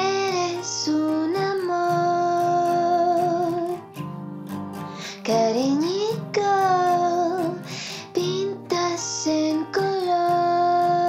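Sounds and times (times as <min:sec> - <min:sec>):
woman singing: 0:00.0 - 0:03.8, 0:05.0 - 0:11.0.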